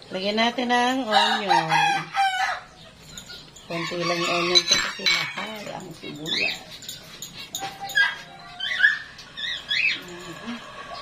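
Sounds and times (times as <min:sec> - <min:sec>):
high-pitched animal calls: 0:02.2 - 0:11.0.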